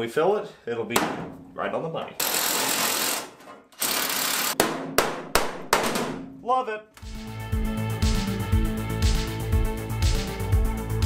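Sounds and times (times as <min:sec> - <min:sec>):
hammer striking sheet metal: 0:01.0 - 0:01.5, 0:04.6 - 0:06.4.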